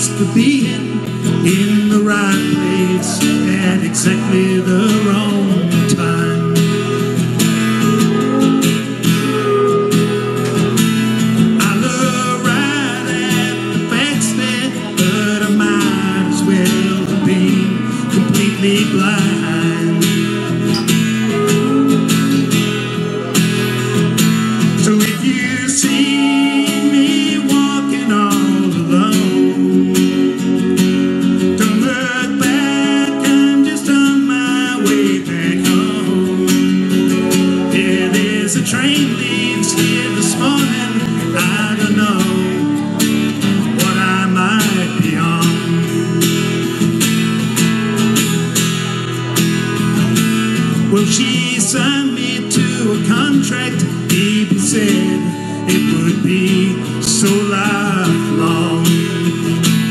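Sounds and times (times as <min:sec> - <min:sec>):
acoustic guitar strummed: 0:00.0 - 0:59.9
steel guitar sliding notes: 0:00.2 - 0:59.9.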